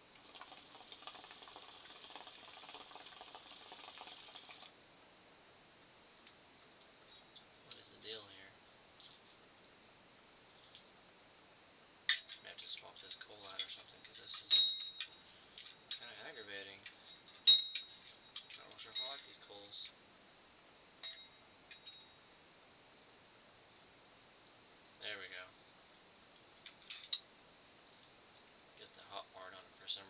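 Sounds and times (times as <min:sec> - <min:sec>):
hookah water gurgling: 0:00.1 - 0:04.8
metallic clinks of tongs: 0:14.4 - 0:15.1.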